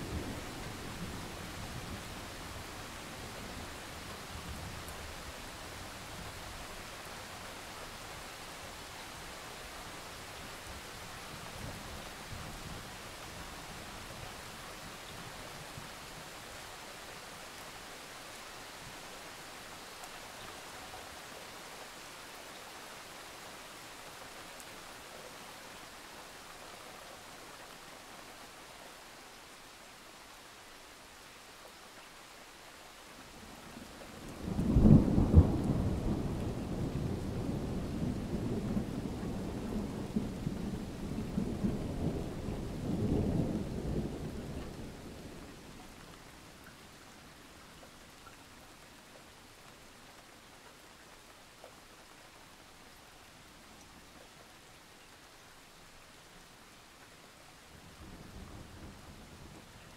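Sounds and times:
heavy rain: 0.0 - 59.9.

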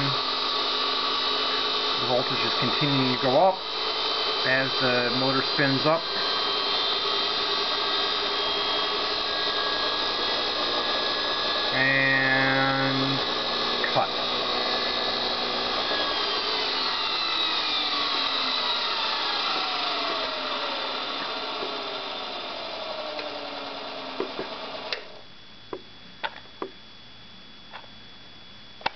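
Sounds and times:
electric motor whine: 0.0 - 28.9.

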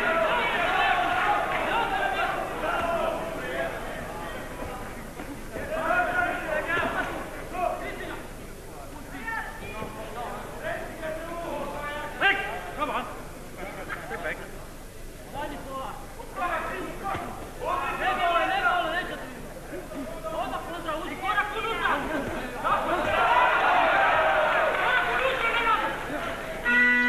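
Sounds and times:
men calling out and talking: 0.0 - 26.7
crowd noise: 0.0 - 27.0.

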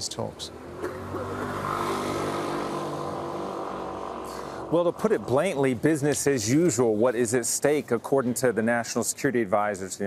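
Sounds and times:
vehicle engine hum: 0.5 - 6.3.

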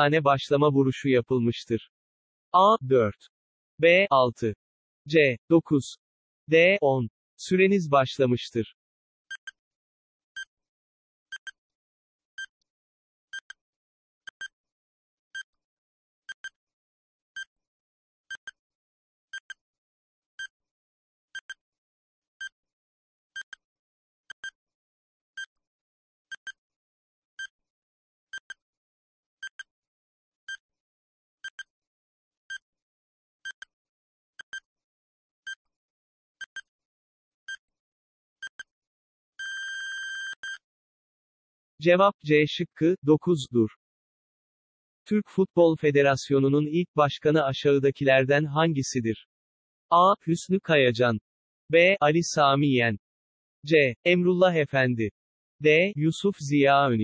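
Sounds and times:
electronic timer beeps: 18.3 - 18.5, 39.4 - 40.6
long steady beep: 39.4 - 40.6.

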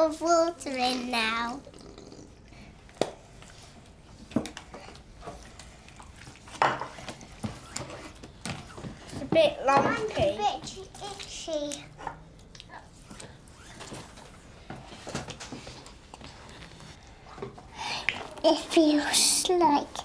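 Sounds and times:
child making wordless sounds: 0.0 - 2.3, 18.4 - 20.0.

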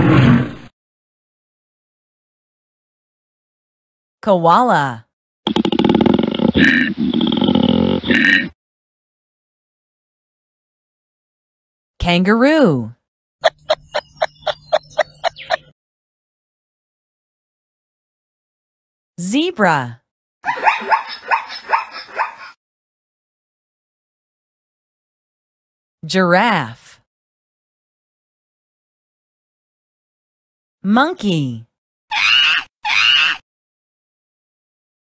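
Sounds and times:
zebra barking calls: 20.5 - 22.5.

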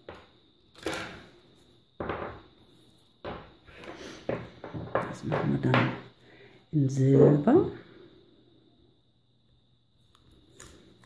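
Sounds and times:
tape rolls knocking on wooden table: 2.0 - 2.5, 3.2 - 6.1.

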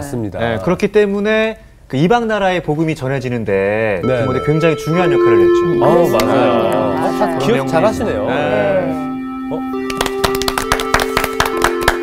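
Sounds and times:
background music sustained notes: 4.0 - 12.0
small group clapping: 9.8 - 12.0.

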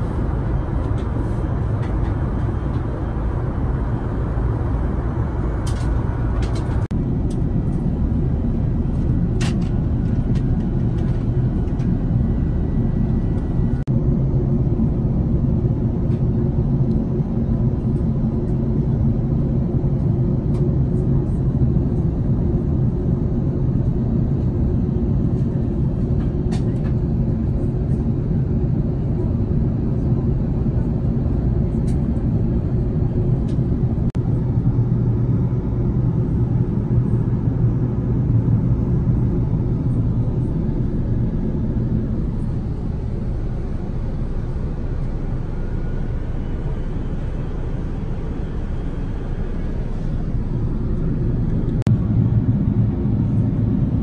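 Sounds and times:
airplane cabin drone: 0.0 - 54.0
faint hum: 0.0 - 54.0.

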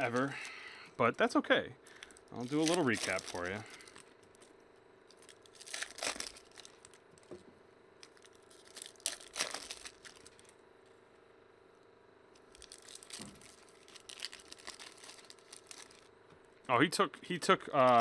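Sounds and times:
foil wrappers tearing and crinkling: 0.0 - 0.8, 1.9 - 4.5, 5.1 - 7.3, 8.0 - 10.6, 12.5 - 16.1.

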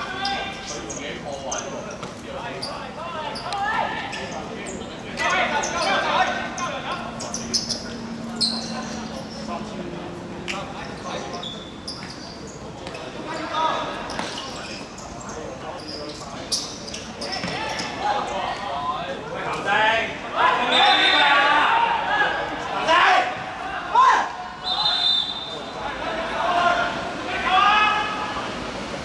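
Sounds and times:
players shouting: 0.0 - 11.8, 17.0 - 29.0
ball kicks and bounces: 17.4 - 17.6.

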